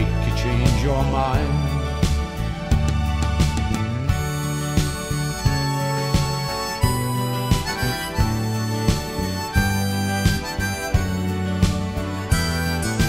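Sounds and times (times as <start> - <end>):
guitar backing with beat: 0.0 - 13.0
harmonica melody: 0.0 - 13.0.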